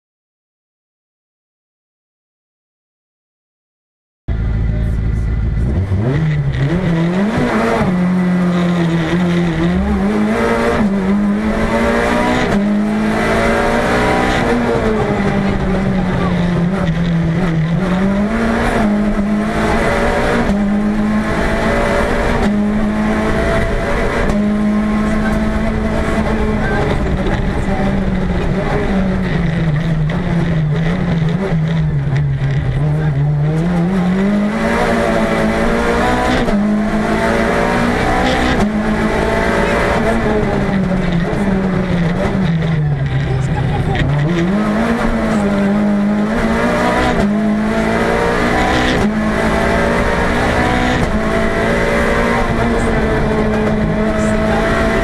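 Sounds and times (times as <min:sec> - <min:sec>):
rally car engine driven hard: 0:04.3 - 0:55.0.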